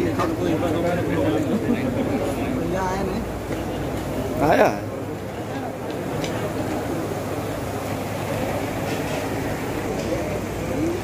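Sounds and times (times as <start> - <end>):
murmured voices: 0.0 - 11.0.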